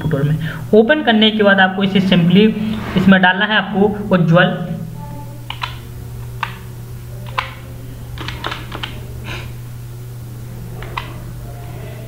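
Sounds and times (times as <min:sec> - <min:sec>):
steady low hum: 0:00.0 - 0:12.0
typing on a keyboard: 0:08.2 - 0:09.0.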